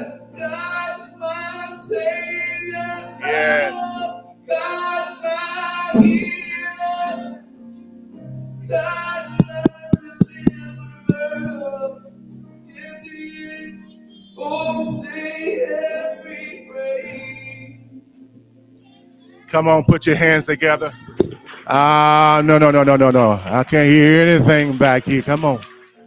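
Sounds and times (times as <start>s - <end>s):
person singing gospel: 0.0s - 18.0s, 19.3s - 26.0s
keyboard accompaniment: 0.0s - 26.0s.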